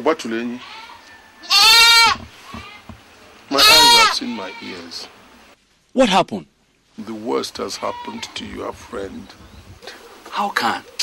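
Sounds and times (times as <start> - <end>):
loud drawn-out calls: 3.5 - 5.1.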